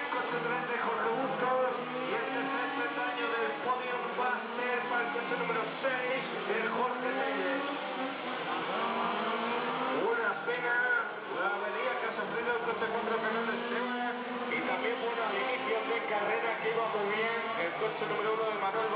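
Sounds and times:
model race car engines buzzing: 0:00.0 - 0:18.9.

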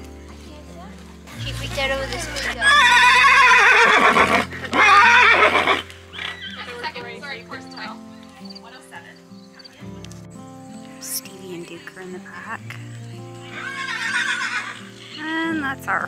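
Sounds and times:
background music with sustained notes: 0:00.0 - 0:16.0
horse neighing: 0:02.4 - 0:07.0, 0:13.4 - 0:15.5.

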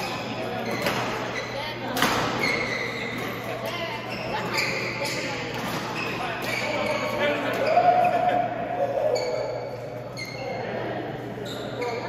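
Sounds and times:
sports shoes squeaking on court floor: 0:00.0 - 0:07.3, 0:09.1 - 0:10.6, 0:11.4 - 0:12.0
people's voices in echoing hall: 0:00.0 - 0:12.0.

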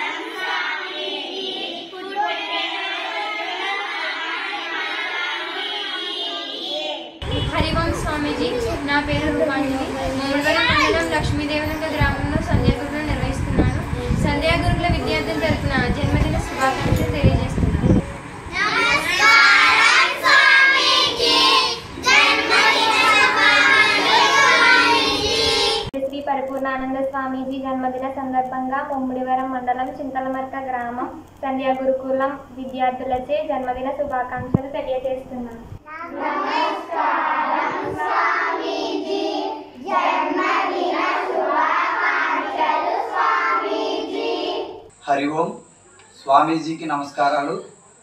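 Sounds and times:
children chanting in unison: 0:00.0 - 0:07.3, 0:18.5 - 0:25.9, 0:35.9 - 0:44.9.

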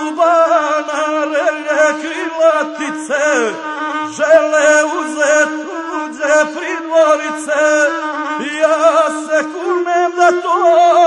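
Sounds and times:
bowed single-string fiddle droning: 0:00.0 - 0:11.0
man chanting verse: 0:00.0 - 0:11.0.

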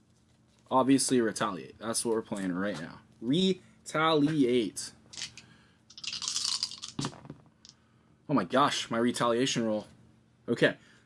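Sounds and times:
dice rattling in hands: 0:05.1 - 0:07.4
dice clattering into tray: 0:05.2 - 0:07.4.

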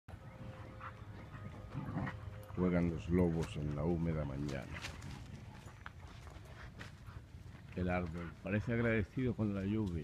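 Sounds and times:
huskies play-fighting: 0:00.1 - 0:10.0.

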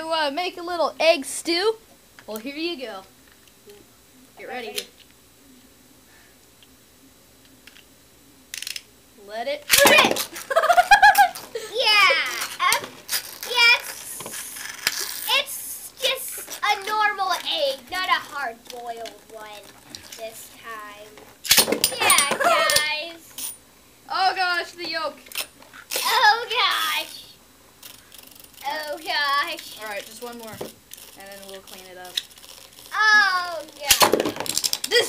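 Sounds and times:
children laughing: 0:10.0 - 0:12.8, 0:21.9 - 0:23.1.

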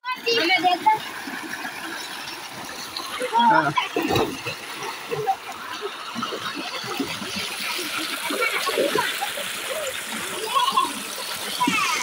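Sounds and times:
people splashing in water: 0:00.3 - 0:12.0.

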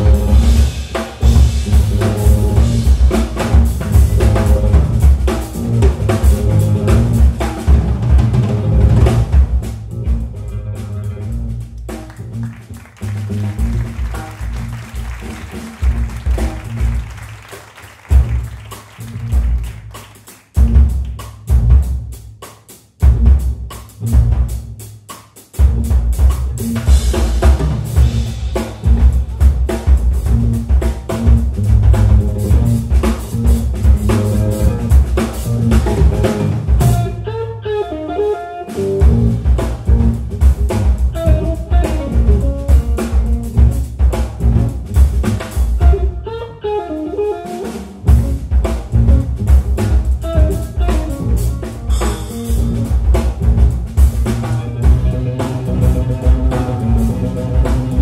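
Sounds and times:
electric guitar: 0:00.0 - 0:11.6, 0:31.1 - 0:58.0
electric bass: 0:00.0 - 0:17.4, 0:18.1 - 0:20.0, 0:20.6 - 0:22.2, 0:23.0 - 0:24.8, 0:25.6 - 0:58.0
drum kit playing: 0:00.0 - 0:58.0.

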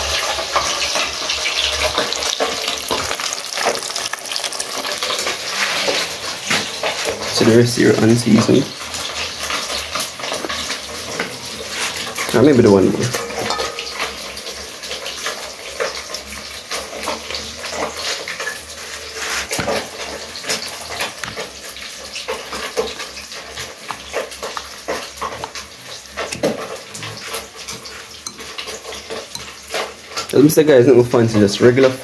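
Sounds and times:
fork stirring wet batter: 0:01.6 - 0:30.5.

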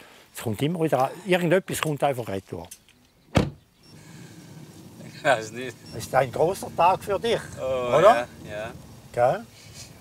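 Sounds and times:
car door shutting: 0:03.3 - 0:06.4
car cabin hum: 0:03.4 - 0:09.0.

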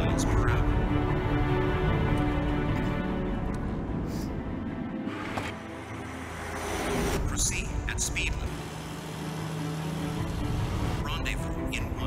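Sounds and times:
film music: 0:00.0 - 0:12.0
truck rushing past: 0:05.0 - 0:11.1.

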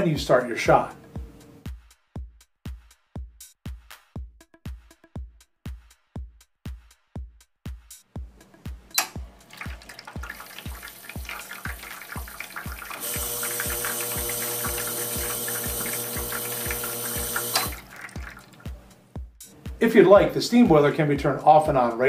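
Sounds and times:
music beat: 0:00.1 - 0:22.0
water streaming onto drip tray: 0:09.4 - 0:18.9
espresso machine pump running: 0:10.7 - 0:17.9.

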